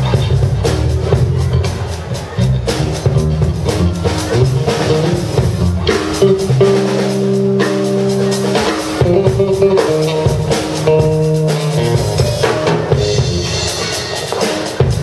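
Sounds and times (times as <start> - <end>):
jazz trio playing: 0.0 - 15.0
steady drum pattern: 0.0 - 15.0
electric guitar held notes: 1.1 - 14.7.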